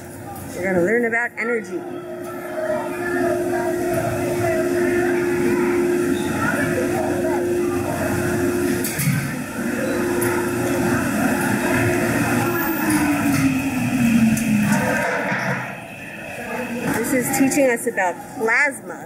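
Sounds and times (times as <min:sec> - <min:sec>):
indistinct chatter: 0:00.0 - 0:19.0
people talking: 0:00.0 - 0:19.0
steady hum: 0:00.0 - 0:19.0.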